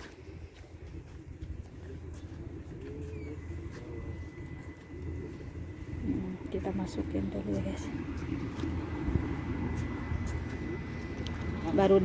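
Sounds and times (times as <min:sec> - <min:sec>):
faint murmured voices: 0:00.0 - 0:12.0
vehicle motor rumble: 0:00.0 - 0:12.0.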